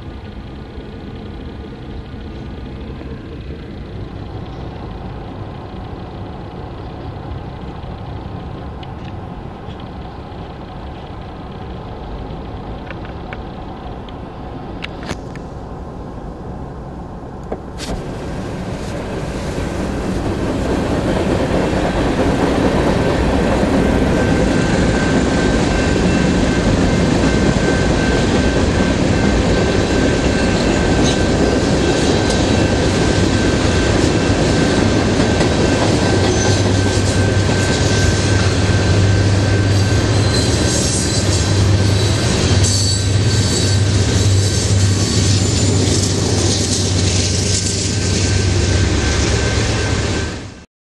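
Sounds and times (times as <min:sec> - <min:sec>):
diesel locomotive engine drone: 0:00.0 - 0:50.7
train wheels rumbling on rail: 0:00.0 - 0:50.7
thin steady squeal: 0:23.8 - 0:50.5.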